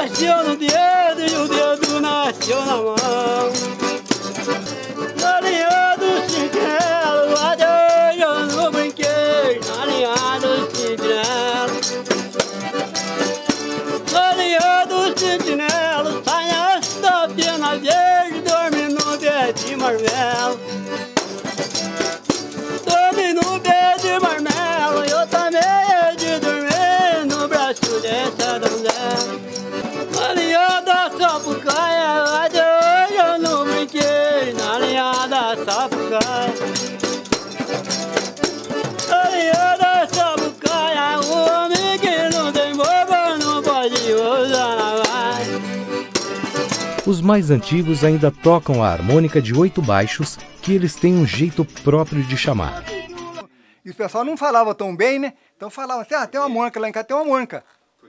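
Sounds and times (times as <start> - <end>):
man singing folk song: 0.0 - 12.1, 14.0 - 20.8, 22.8 - 29.4, 30.1 - 36.8, 39.0 - 45.6, 46.9 - 53.5
rattling percussion: 0.0 - 53.4.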